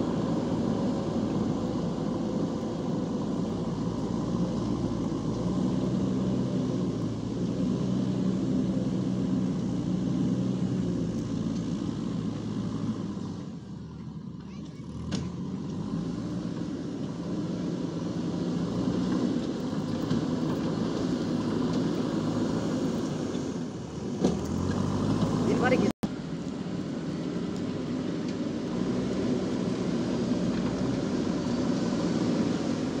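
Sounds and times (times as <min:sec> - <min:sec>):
rising engine whine: 0:00.0 - 0:14.3, 0:15.4 - 0:33.0
diesel engine running: 0:00.0 - 0:33.0.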